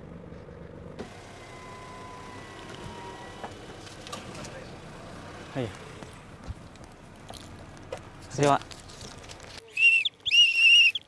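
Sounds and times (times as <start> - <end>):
car engine idling: 0.0 - 9.7.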